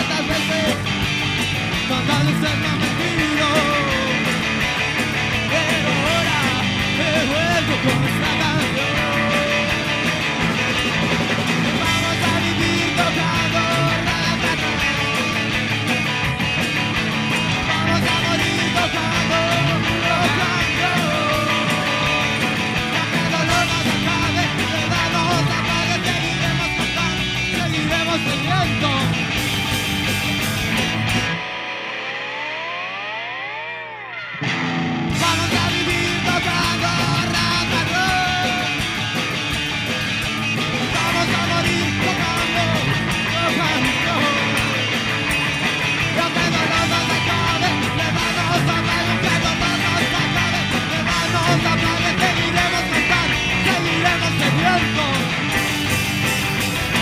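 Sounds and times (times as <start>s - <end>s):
rock band playing live: 0.0s - 57.0s.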